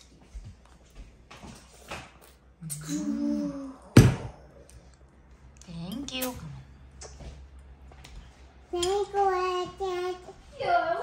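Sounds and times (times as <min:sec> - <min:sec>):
toddler singing: 0:08.8 - 0:10.4.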